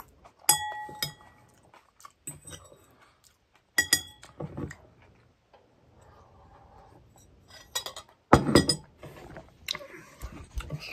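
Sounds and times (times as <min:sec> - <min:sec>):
ceramic bowl clink: 0:00.5 - 0:01.3, 0:03.8 - 0:04.4.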